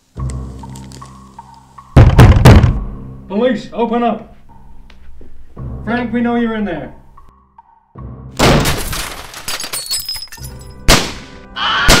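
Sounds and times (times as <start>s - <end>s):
music: 0.0s - 12.0s
sharp bangs: 2.0s - 3.0s
crash of something shattering: 8.4s - 10.4s.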